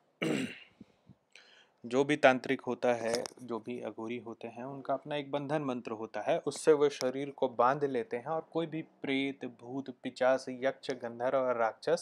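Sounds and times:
man clearing his throat: 0.2s - 0.8s
faint breath: 0.7s - 1.8s
man speaking: 1.9s - 12.0s.

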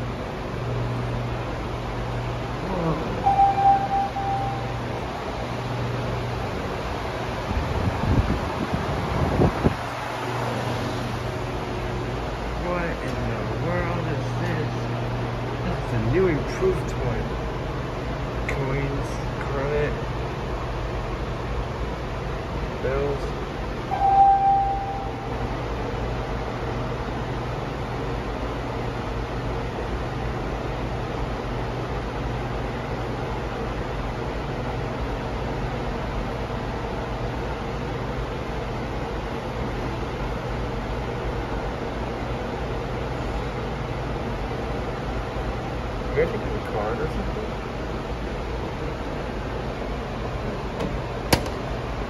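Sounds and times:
fan motor humming: 0.0s - 52.0s
low hum: 2.1s - 5.6s, 23.8s - 25.6s
short high tone: 2.7s - 5.0s, 23.9s - 25.5s
air gusts rumbling on microphone: 6.7s - 12.4s.

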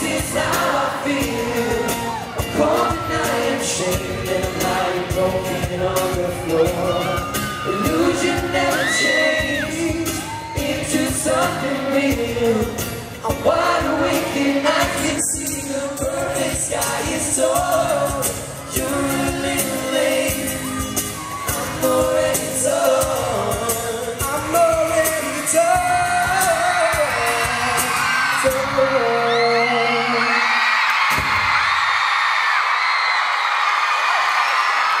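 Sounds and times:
pop band with vocals: 0.0s - 35.0s
fans screaming: 1.0s - 5.0s, 5.9s - 11.6s, 20.2s - 22.3s, 24.7s - 35.0s.

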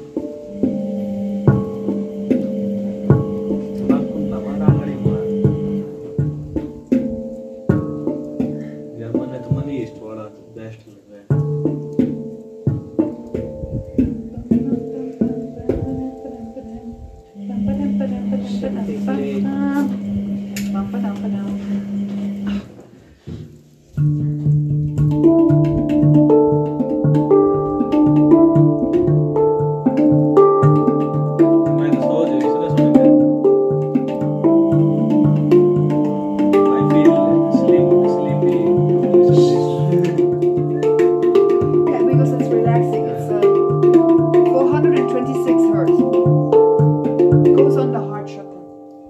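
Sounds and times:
handpan played by hand: 0.0s - 49.0s.

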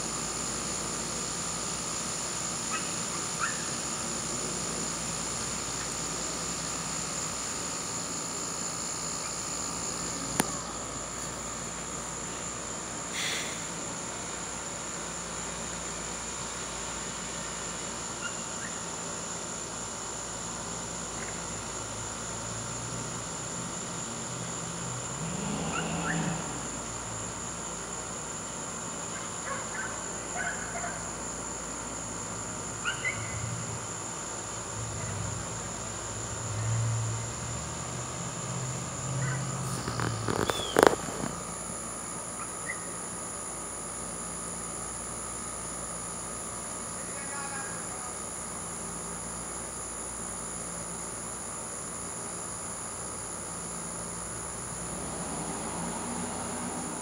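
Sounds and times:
high-pitched insect drone: 0.0s - 57.0s
hiss: 13.1s - 13.9s
faint chirps: 39.2s - 41.1s, 42.4s - 43.0s.

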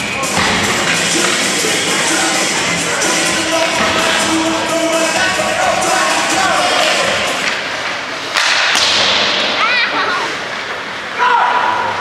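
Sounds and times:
stick striking puck: 3.6s - 4.2s, 8.3s - 9.5s.

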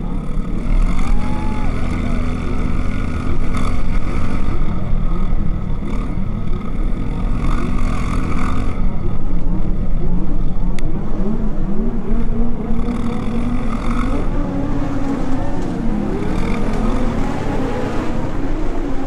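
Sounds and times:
motorcycle engine revving: 0.0s - 19.0s
wind and road noise: 0.0s - 19.0s.

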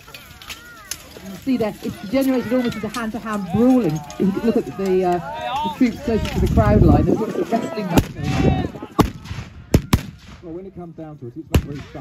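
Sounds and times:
black-powder gunshots: 7.9s - 10.5s, 11.5s - 12.0s.

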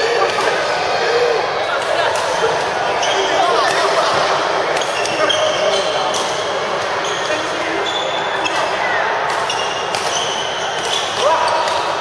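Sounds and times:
sneakers squeaking on court floor: 2.9s - 11.2s
racket striking shuttlecock: 8.6s - 11.9s.

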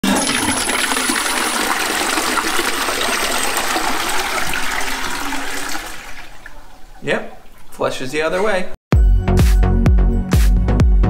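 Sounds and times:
toilet flushing: 0.0s - 8.5s.

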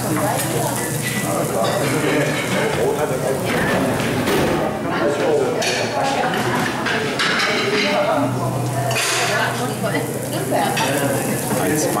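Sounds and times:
food sizzling on a griddle: 0.0s - 4.3s, 5.6s - 12.0s.

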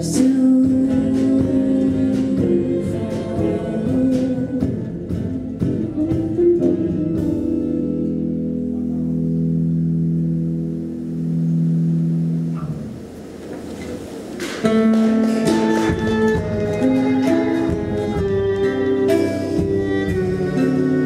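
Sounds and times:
classical guitar chords: 0.0s - 21.0s.

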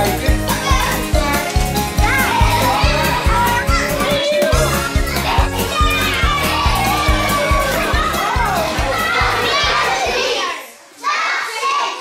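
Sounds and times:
upbeat music with bass beat: 0.0s - 9.8s
young children's voices: 0.0s - 12.0s.

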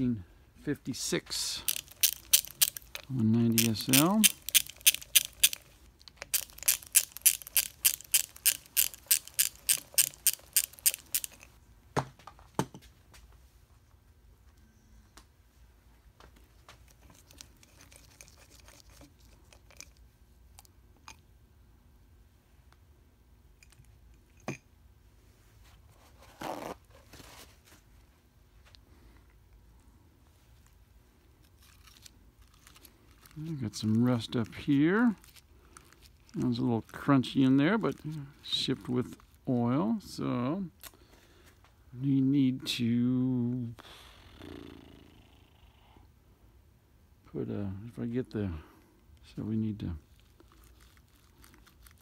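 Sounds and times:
ratchet wrench clicking: 1.7s - 5.6s, 6.2s - 11.5s.

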